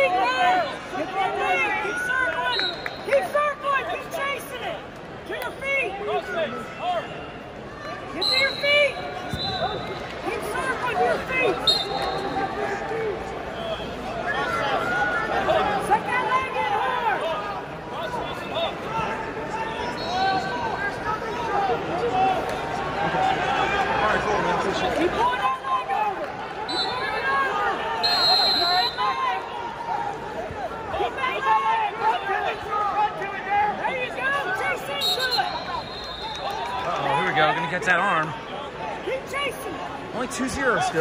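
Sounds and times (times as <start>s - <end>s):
crowd shouting and chattering: 0.0s - 41.0s
high whistle blasts: 8.2s - 10.0s, 11.6s - 12.4s, 26.7s - 27.2s, 28.0s - 29.2s, 34.9s - 36.7s.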